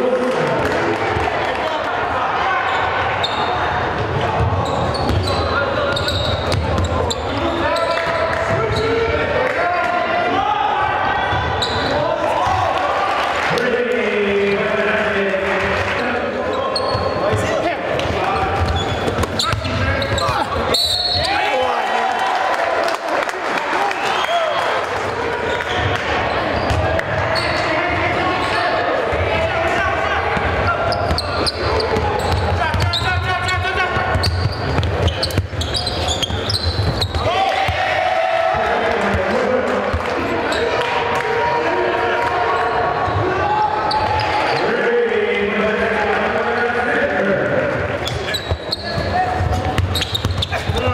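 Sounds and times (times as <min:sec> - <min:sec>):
voices of players and spectators: 0:00.0 - 0:50.9
basketball bouncing on wooden court: 0:04.0 - 0:07.2, 0:16.9 - 0:20.5, 0:26.6 - 0:27.0, 0:30.4 - 0:37.8, 0:48.0 - 0:50.9.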